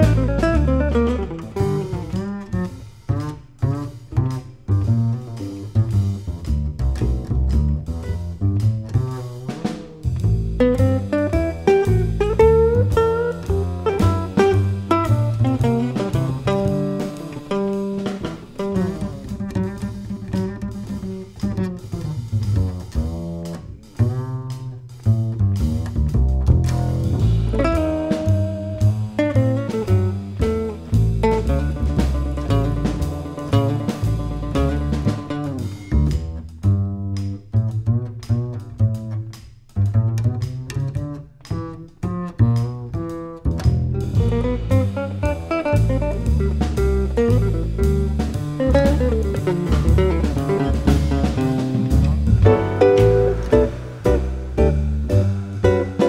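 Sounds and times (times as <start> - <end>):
jazz guitar: 0.0 - 56.0
plucked upright bass: 0.0 - 56.0.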